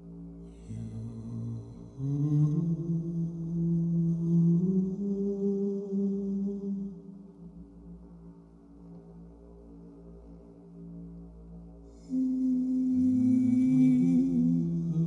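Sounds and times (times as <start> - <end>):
layered drone: 0.0 - 15.0.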